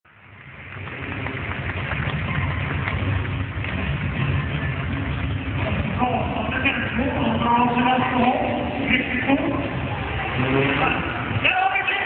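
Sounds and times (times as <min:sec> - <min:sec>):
motorbike engines running: 0:00.1 - 0:12.0.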